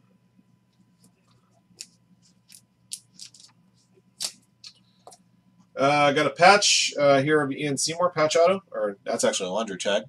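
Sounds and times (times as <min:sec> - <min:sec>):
trading cards sliding and clicking: 0:01.0 - 0:05.2.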